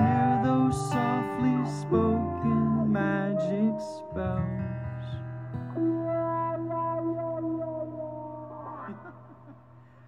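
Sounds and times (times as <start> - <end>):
acoustic guitar chord ringing: 0.0 - 10.0
lap steel guitar notes: 0.0 - 10.0.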